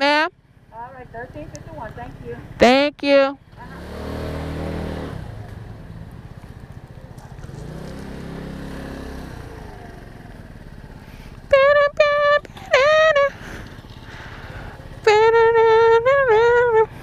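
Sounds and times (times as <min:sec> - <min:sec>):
scooter engine pulling away: 0:03.4 - 0:17.0
loud held tone: 0:11.5 - 0:13.3.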